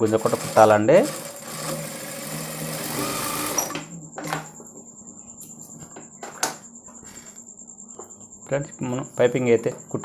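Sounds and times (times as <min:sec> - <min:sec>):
sewing machine running: 0:00.0 - 0:03.9.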